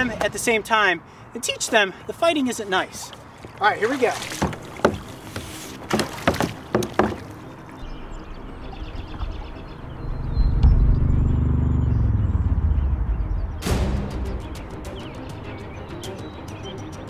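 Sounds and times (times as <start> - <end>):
paddle knocking on hollow kayak hull: 3.4 - 7.5
low steady rumble: 7.8 - 13.8.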